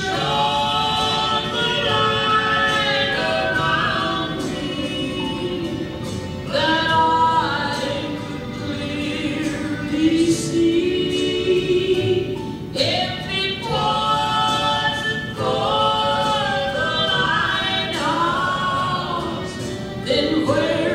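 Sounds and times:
musical backing: 0:00.0 - 0:20.9
voices singing gospel in harmony: 0:00.0 - 0:20.9.

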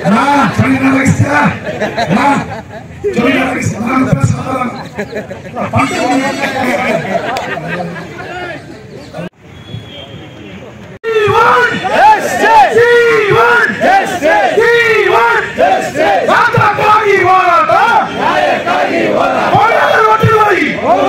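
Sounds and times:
crowd shouting slogans: 0:11.1 - 0:21.0.

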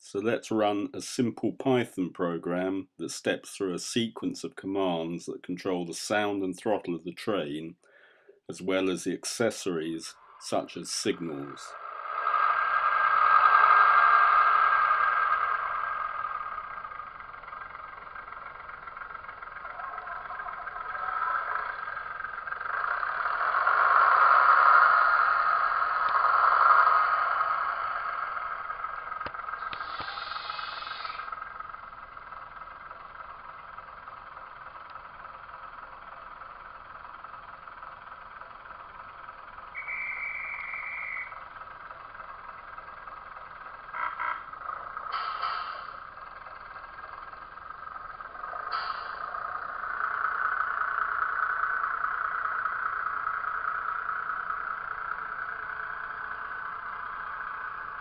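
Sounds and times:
model train diesel engine sound: 0:00.0 - 0:58.0.

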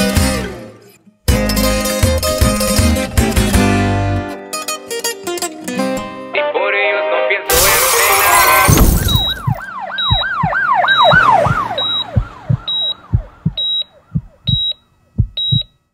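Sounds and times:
guitar music: 0:00.0 - 0:06.6
siren wailing: 0:08.8 - 0:14.5
short high beep with thump: 0:08.8 - 0:15.7.

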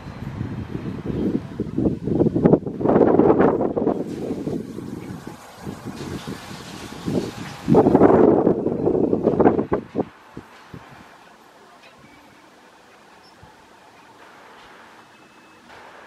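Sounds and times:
wind gusts on microphone: 0:00.0 - 0:11.3.

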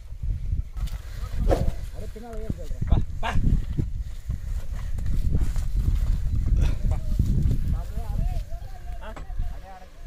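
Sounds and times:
hooves on dirt track: 0:00.8 - 0:10.0.

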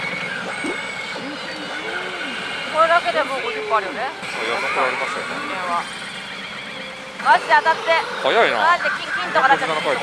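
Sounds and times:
pachinko machines and game audio: 0:03.4 - 0:10.0
woman's voice: 0:07.2 - 0:08.0.

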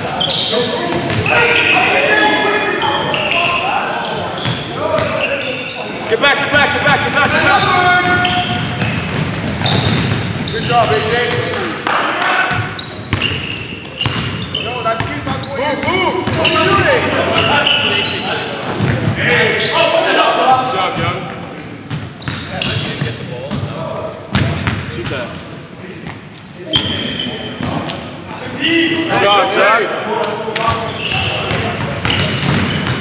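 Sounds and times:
players shouting: 0:00.0 - 0:21.2
basketball bouncing on hardwood: 0:08.0 - 0:10.2.

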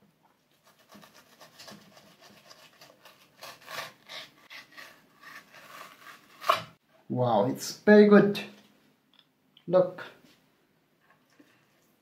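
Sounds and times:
knife scraping fish skin: 0:00.6 - 0:06.8.

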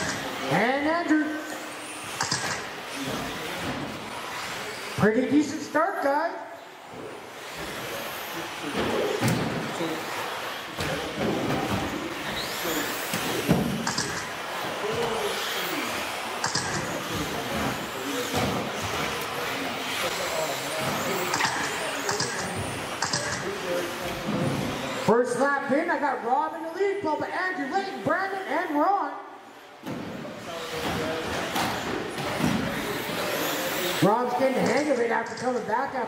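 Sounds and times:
rc cars knocking on track: 0:00.0 - 0:00.4, 0:02.0 - 0:03.7, 0:09.3 - 0:15.6, 0:16.2 - 0:24.9
rc car motors whining: 0:00.0 - 0:00.6, 0:01.2 - 0:05.7, 0:06.6 - 0:25.4, 0:30.3 - 0:35.6.

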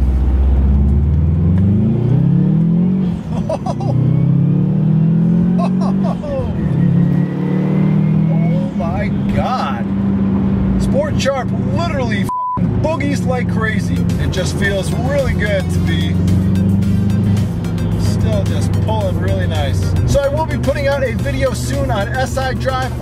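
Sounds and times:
car engine accelerating hard: 0:00.0 - 0:23.0.

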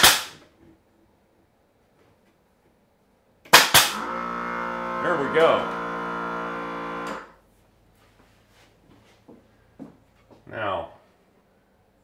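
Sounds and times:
pneumatic nailer firing: 0:00.0 - 0:00.4, 0:03.5 - 0:05.9.

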